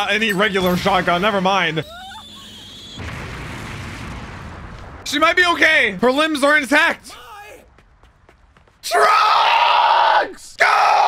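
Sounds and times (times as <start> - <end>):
explosion blast with rumble: 3.0 - 6.2.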